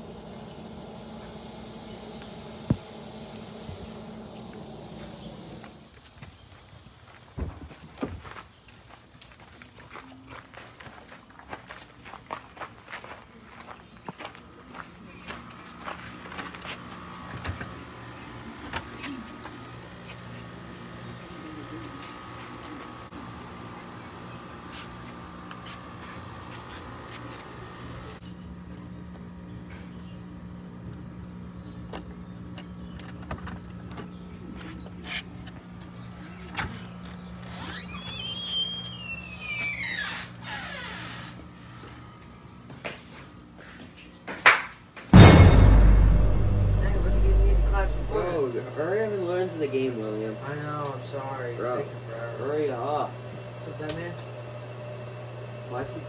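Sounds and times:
low hum: 0:00.0 - 0:06.0, 0:45.2 - 0:48.6
footsteps on paving: 0:05.9 - 0:17.6
door hinges creaking: 0:37.4 - 0:41.4.

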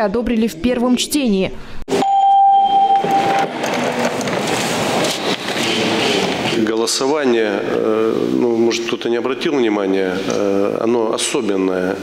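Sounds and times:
steady electronic beep: 0:01.9 - 0:03.8
hall background noise: 0:02.8 - 0:12.0.

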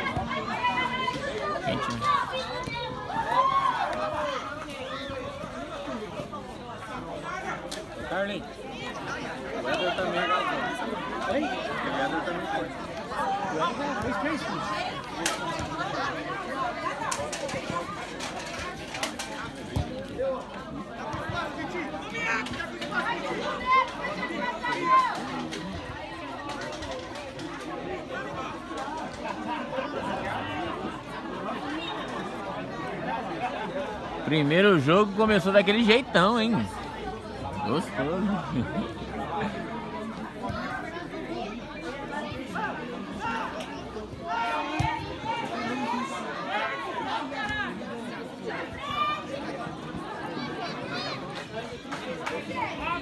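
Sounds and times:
players calling out and chattering: 0:00.0 - 0:53.0.

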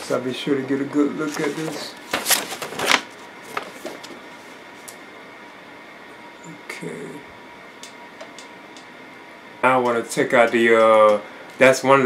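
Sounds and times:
paper sheet rustling and crinkling: 0:01.2 - 0:04.2.

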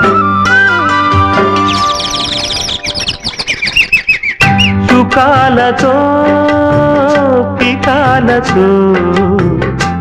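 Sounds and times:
held instrumental notes: 0:00.0 - 0:05.5
birdsong chirping: 0:01.0 - 0:04.9.

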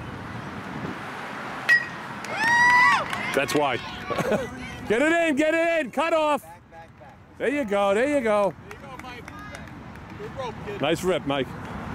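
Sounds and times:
metal bat hitting ball: 0:01.7 - 0:02.1.

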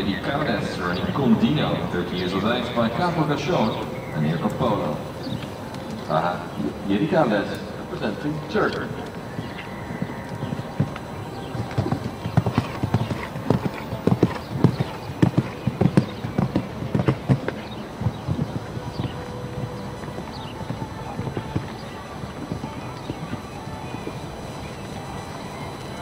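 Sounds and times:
hoofbeats cantering on sand: 0:00.0 - 0:26.0.

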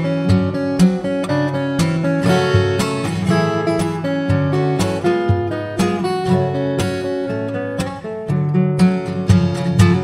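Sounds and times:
acoustic guitar fingerstyle: 0:00.0 - 0:10.0.

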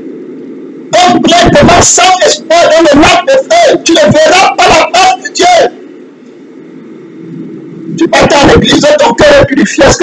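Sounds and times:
low room noise rumble: 0:00.0 - 0:10.0.

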